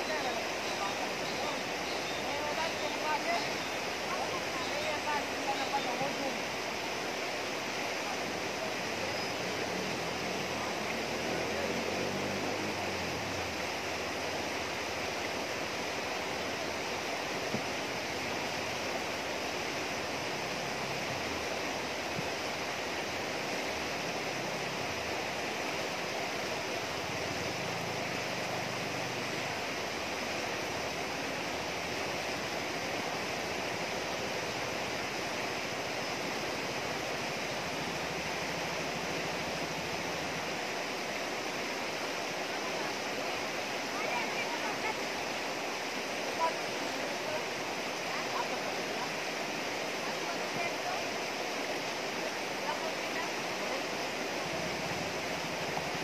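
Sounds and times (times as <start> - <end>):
river water rushing over rocks: 0.0 - 56.0.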